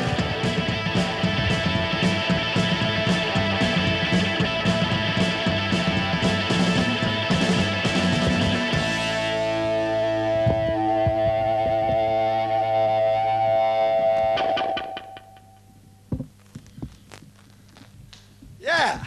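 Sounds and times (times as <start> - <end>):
distorted electric guitar chord: 0.0 - 15.8
drum hits: 10.4 - 12.2.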